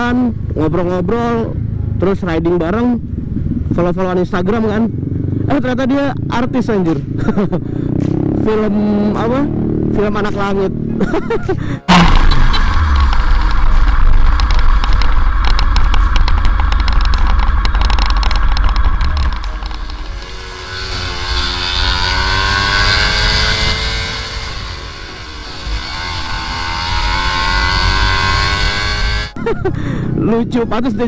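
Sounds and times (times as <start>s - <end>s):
motorcycle engine revving at speed: 0.0s - 31.0s.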